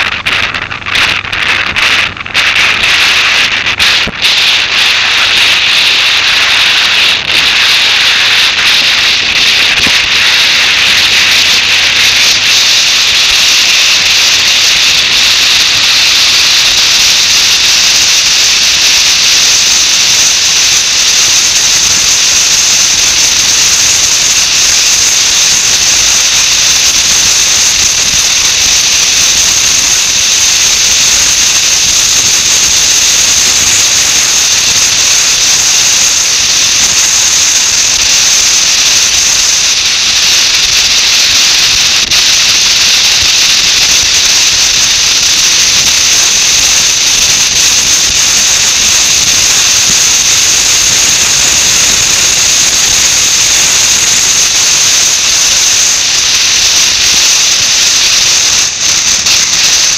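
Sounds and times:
wind rush over microphone: 0:00.0 - 0:59.9.

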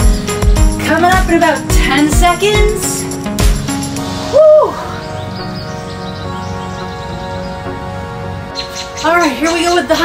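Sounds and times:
background music: 0:00.0 - 0:10.0
woman exclaiming wow: 0:04.3 - 0:04.9.

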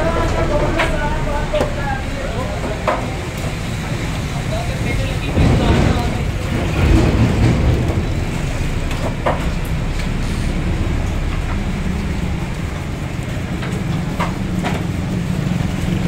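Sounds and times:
traffic rumble: 0:00.0 - 0:16.0.

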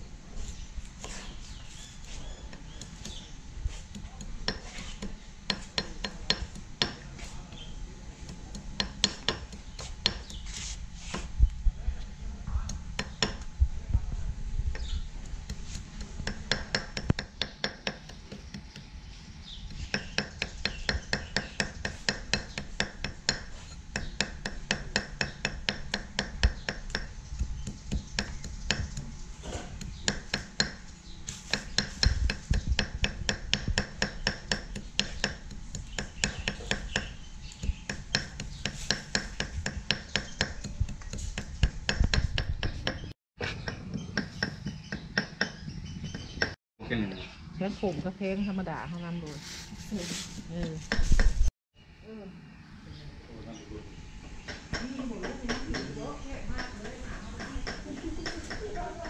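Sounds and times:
cleaver chopping on wooden block: 0:08.3 - 0:10.4, 0:14.8 - 0:18.9, 0:19.6 - 0:46.6.

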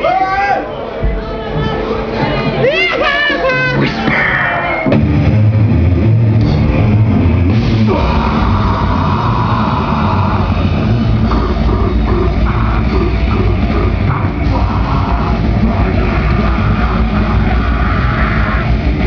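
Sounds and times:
grindcore band playing live: 0:01.1 - 0:19.0.

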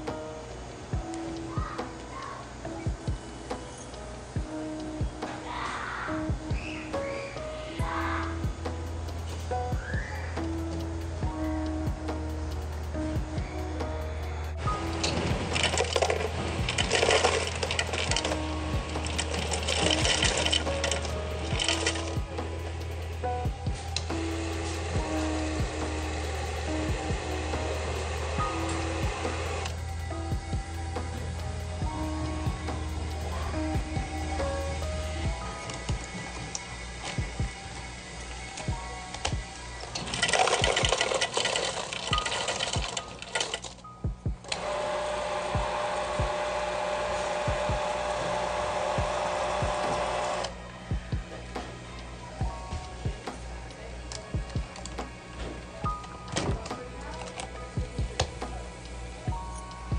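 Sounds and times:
background music: 0:00.0 - 0:59.9
soda fountain pouring: 0:14.8 - 0:22.2, 0:39.9 - 0:43.8
ice rattling in plastic cup: 0:15.0 - 0:22.1, 0:40.0 - 0:43.8.

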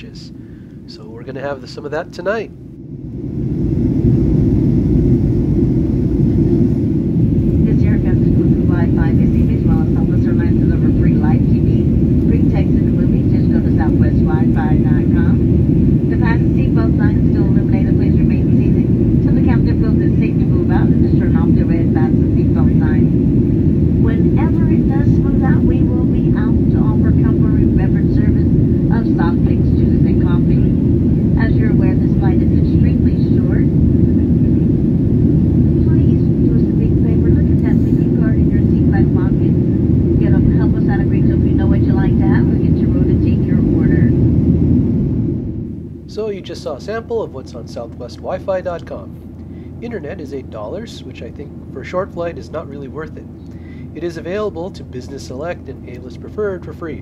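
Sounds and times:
airliner cabin rumble: 0:00.0 - 0:57.0
faint passenger chatter: 0:24.0 - 0:44.2.

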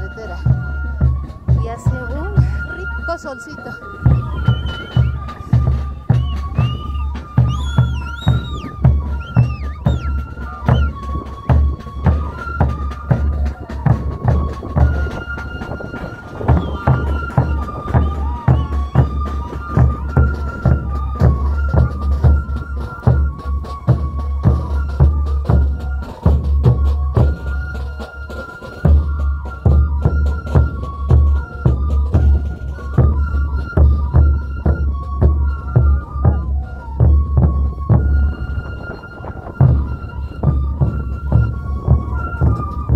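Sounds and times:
flute-like melody: 0:00.0 - 0:42.9.

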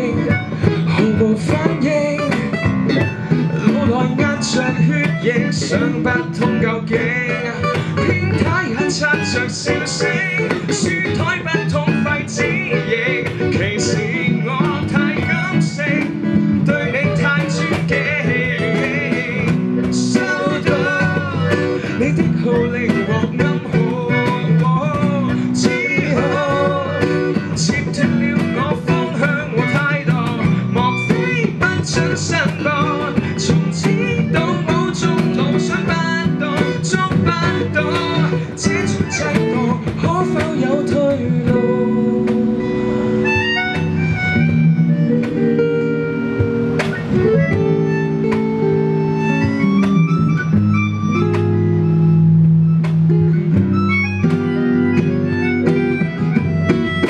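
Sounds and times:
person singing: 0:00.0 - 0:44.2
cajon: 0:00.0 - 0:57.0
electric bass: 0:00.0 - 0:57.0
keyboard notes: 0:00.0 - 0:57.0
strummed acoustic guitar: 0:00.0 - 0:57.0.

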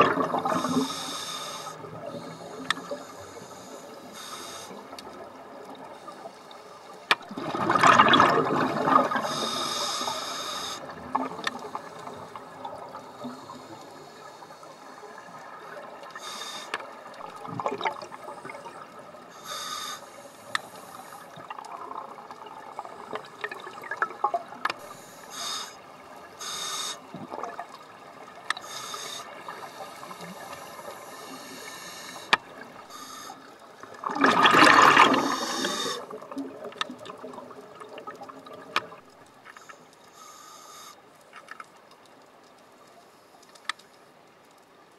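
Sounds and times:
exhaled bubbles rushing underwater: 0:00.0 - 0:00.9, 0:07.2 - 0:09.6, 0:17.0 - 0:19.2, 0:21.4 - 0:24.6, 0:27.1 - 0:28.3, 0:33.8 - 0:39.1
regulator hissing and clicking: 0:00.3 - 0:05.1, 0:09.2 - 0:17.2, 0:26.4 - 0:27.1, 0:35.1 - 0:36.2.

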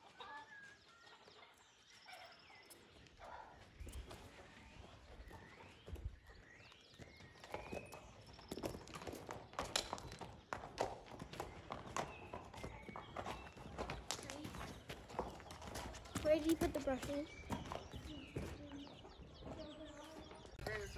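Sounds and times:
horse hooves on gravel: 0:00.0 - 0:20.9.

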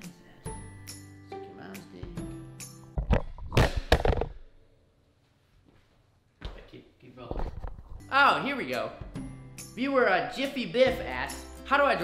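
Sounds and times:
camera handling bumps and rustling: 0:03.0 - 0:04.4.

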